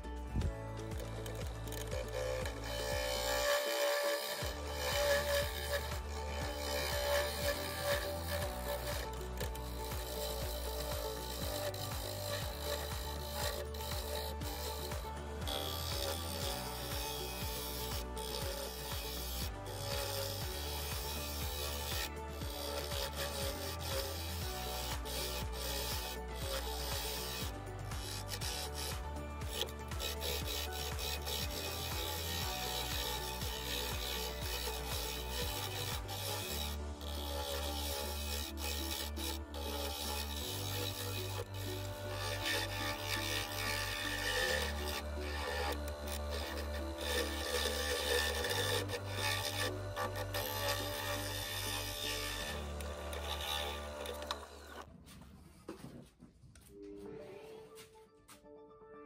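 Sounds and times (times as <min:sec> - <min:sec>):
background music with bass line: 0:00.0 - 0:54.8
lathe gouge scraping wood: 0:00.0 - 0:54.9.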